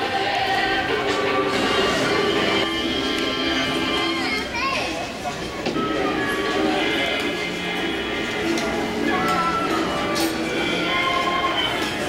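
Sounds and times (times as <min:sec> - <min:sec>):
voices in a large hall: 0:00.0 - 0:12.0.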